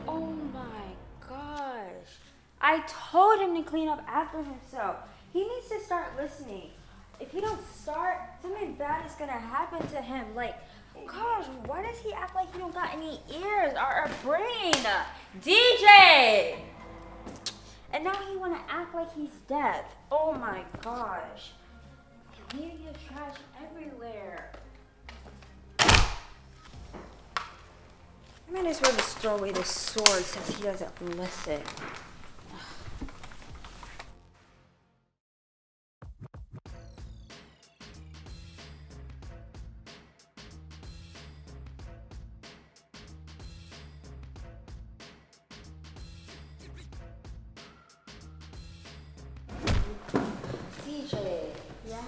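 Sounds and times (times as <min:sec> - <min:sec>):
background music: 0:00.0 - 0:34.9, 0:36.6 - 0:52.0
roller skates landing on wood floor: 0:49.5 - 0:51.9.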